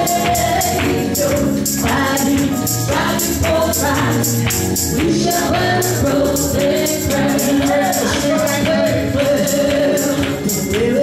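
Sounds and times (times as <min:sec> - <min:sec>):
people singing gospel in harmony: 0:00.0 - 0:11.0.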